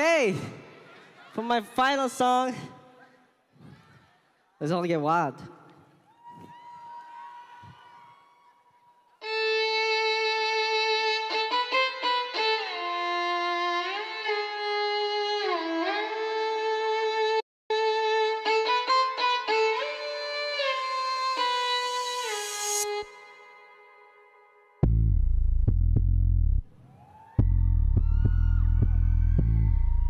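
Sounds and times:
violin-like lead melody: 9.2 - 24.8.

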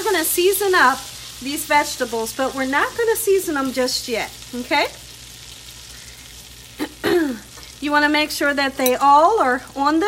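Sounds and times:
butter sizzling in a skillet: 0.0 - 10.0.

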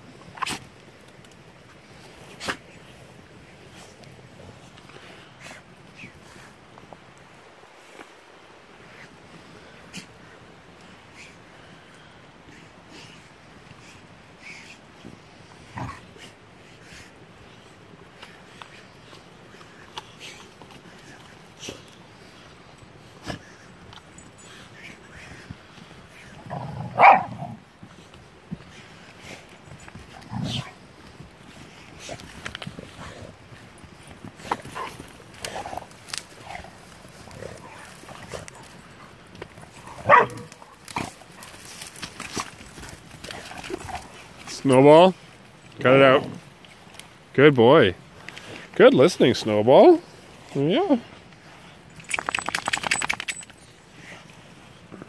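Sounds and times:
dogs play-fighting: 0.0 - 7.4, 8.6 - 44.5, 51.1 - 55.0
loud dog bark: 27.0 - 27.4, 40.0 - 40.5.

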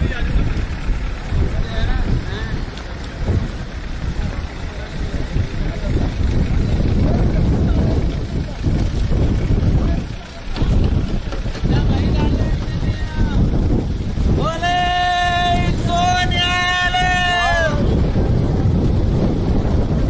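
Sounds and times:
faint voices: 0.0 - 20.0
wind buffeting microphone: 0.0 - 20.0.

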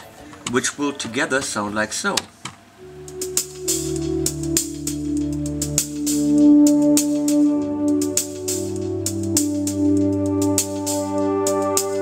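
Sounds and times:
hi-hat ticking with reverb: 2.8 - 12.0
synthesizer pad: 2.8 - 12.0.

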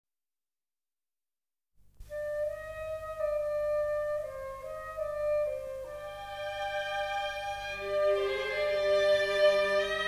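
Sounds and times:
solo flute: 2.1 - 10.0.

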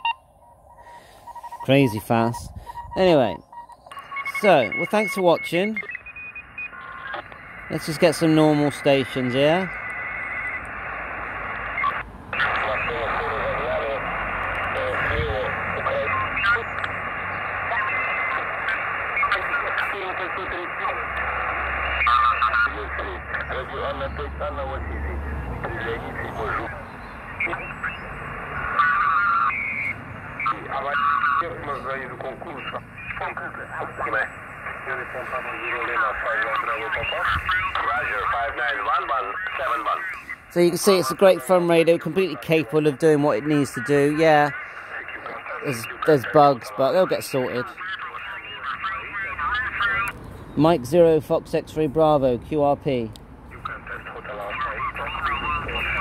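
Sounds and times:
radio static and hiss: 0.0 - 56.0
voices over radio: 0.0 - 56.0.

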